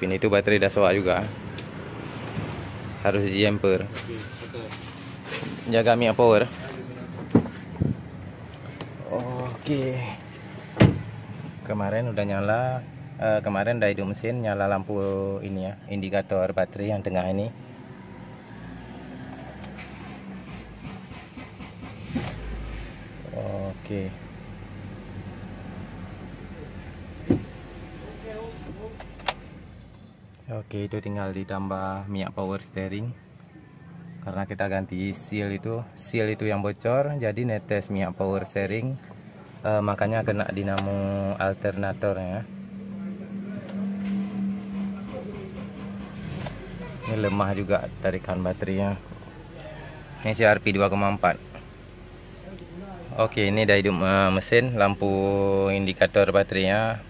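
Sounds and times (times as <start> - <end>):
starter motor cranking engine: 20.4 - 22.6
car engine idling: 39.0 - 57.0.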